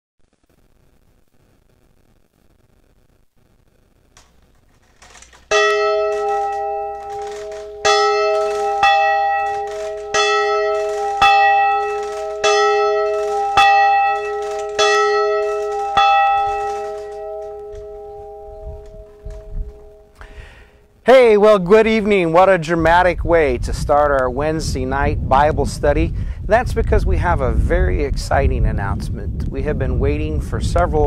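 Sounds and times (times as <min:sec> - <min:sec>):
church bell ringing: 0:05.0 - 0:20.5.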